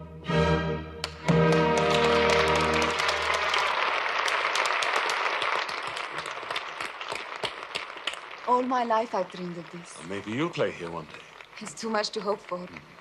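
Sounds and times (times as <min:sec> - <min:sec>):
orchestra chord: 0:00.0 - 0:03.1
audience applause: 0:01.0 - 0:13.0.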